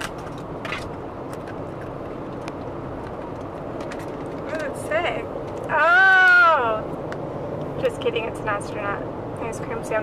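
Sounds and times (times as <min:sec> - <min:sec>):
road noise inside car: 0:00.0 - 0:10.0.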